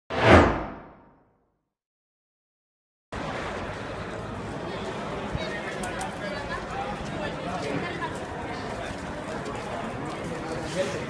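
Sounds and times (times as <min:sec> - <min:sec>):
whoosh: 0:00.1 - 0:01.2.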